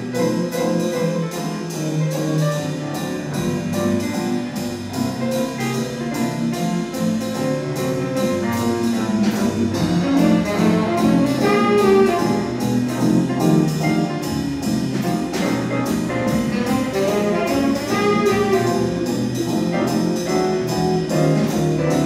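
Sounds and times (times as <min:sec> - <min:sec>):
jazz band playing: 0:00.0 - 0:22.0.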